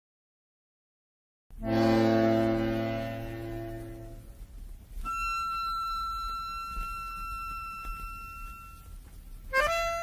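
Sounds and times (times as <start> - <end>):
button accordion: 1.6 - 4.4, 5.0 - 10.0.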